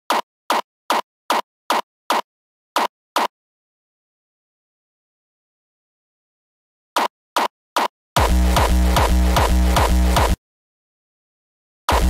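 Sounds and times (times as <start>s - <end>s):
electronic drum hits: 8.2s - 10.4s.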